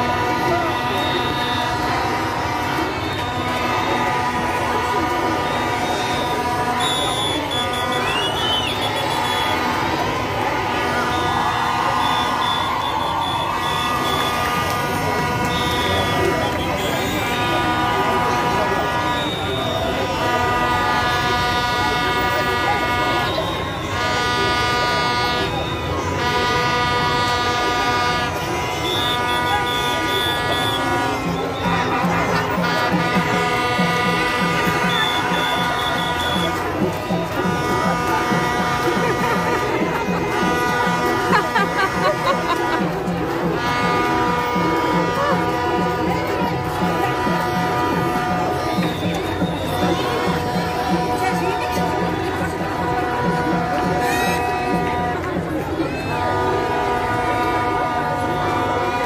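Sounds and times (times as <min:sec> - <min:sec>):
horns in long steady tones: 0:00.0 - 0:59.0
large crowd noise: 0:00.0 - 0:59.0.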